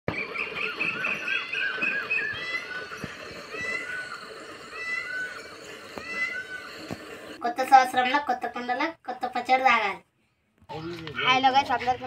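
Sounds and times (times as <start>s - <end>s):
short high arching animal calls: 0.2s - 7.0s.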